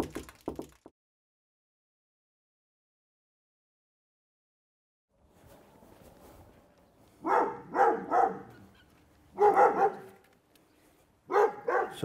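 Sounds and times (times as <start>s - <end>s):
dog barking: 7.2s - 10.2s, 11.3s - 12.0s.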